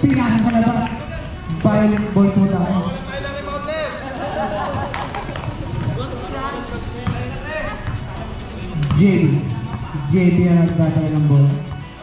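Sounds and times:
basketball bouncing on concrete: 0:07.0 - 0:08.0, 0:08.8 - 0:09.8.

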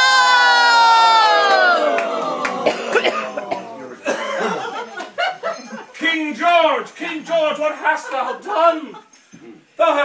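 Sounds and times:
man coughing and spluttering: 0:02.6 - 0:04.7.

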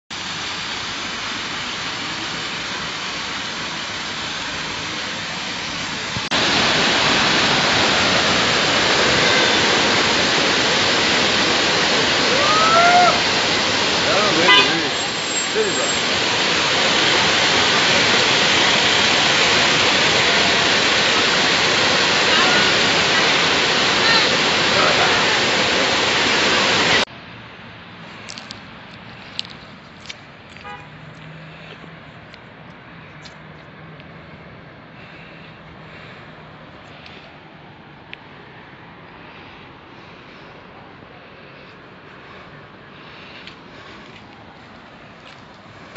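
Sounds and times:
waterfall rushing: 0:00.1 - 0:27.1
fountain water rushing: 0:00.1 - 0:45.9
town background noise: 0:00.1 - 0:45.9
small clicks: 0:28.2 - 0:31.3.

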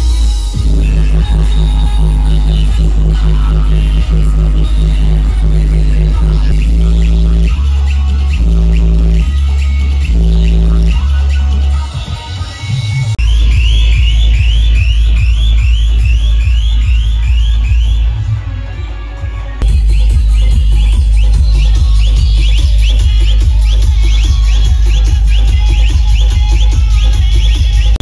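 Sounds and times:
electronic dance music: 0:00.0 - 0:28.0.

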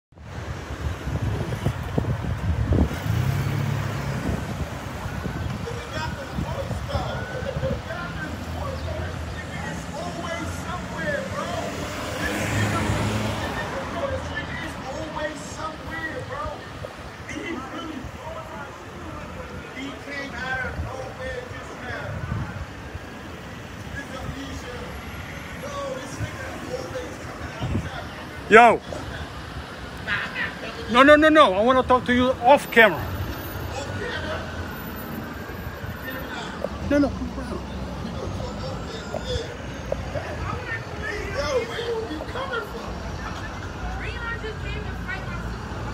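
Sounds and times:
vehicle engine rumble: 0:00.2 - 0:30.9, 0:31.5 - 0:45.9
faint talking voices: 0:04.2 - 0:45.9.

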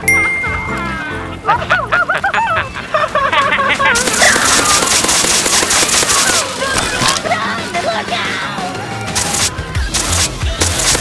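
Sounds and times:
water spraying and splashing: 0:03.9 - 0:06.9, 0:09.1 - 0:11.0.

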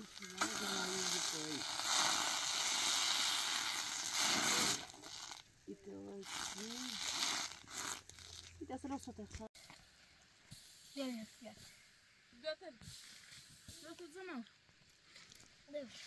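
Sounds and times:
batter sizzling on griddle: 0:00.0 - 0:05.5, 0:06.2 - 0:08.5.

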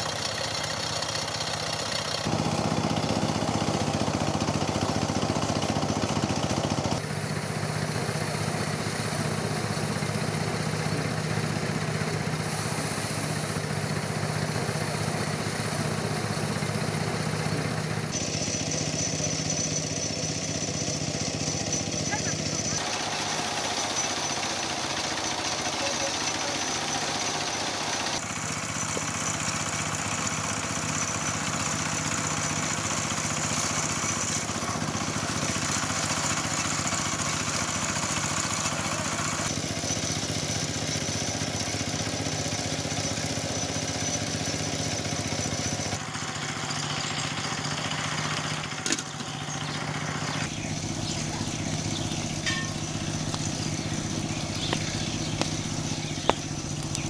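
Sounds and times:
small engine running: 0:00.0 - 0:57.0
threshing drum whirring: 0:02.1 - 0:57.0.

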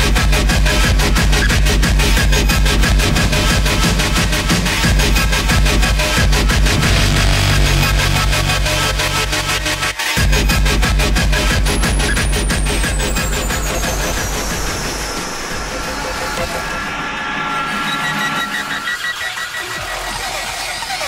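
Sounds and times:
pounding electronic dance music: 0:00.0 - 0:21.0
steady synth tones: 0:02.8 - 0:10.5
synth sweep falling in pitch: 0:06.6 - 0:10.1.

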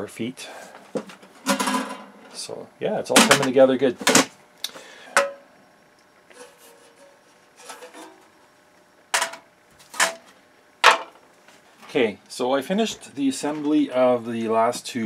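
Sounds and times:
faint rustling and scraping: 0:06.3 - 0:08.6.

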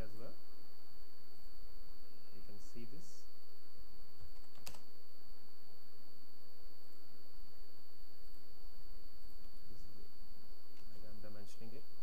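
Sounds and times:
electrical hum with high whine: 0:00.0 - 0:12.0
computer keyboard keystrokes: 0:04.3 - 0:04.8.

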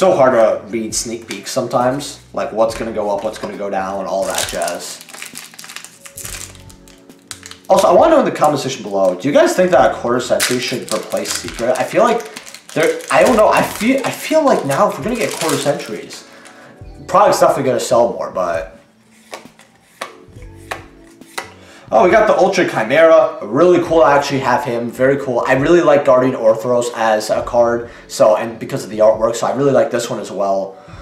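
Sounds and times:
faint steady music: 0:00.0 - 0:31.0
foil wrapper crinkling and tearing: 0:04.1 - 0:09.3, 0:10.3 - 0:16.6
cards clicking while flipped: 0:04.2 - 0:07.9, 0:10.4 - 0:14.2, 0:19.2 - 0:21.6.

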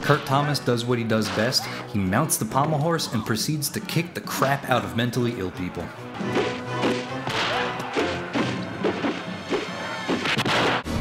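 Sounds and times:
action music: 0:05.7 - 0:11.0
punch and kick impacts: 0:06.3 - 0:11.0.

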